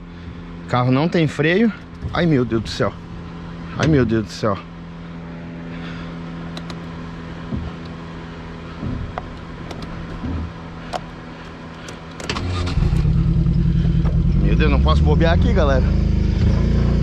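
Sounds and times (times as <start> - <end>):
small car engine running: 0.0 - 17.0
body knocks and rattles: 1.8 - 3.3, 6.8 - 11.6.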